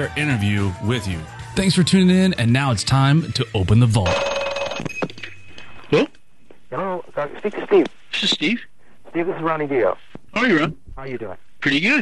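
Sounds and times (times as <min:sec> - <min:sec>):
telephone bell ringing: 0:04.0 - 0:05.5.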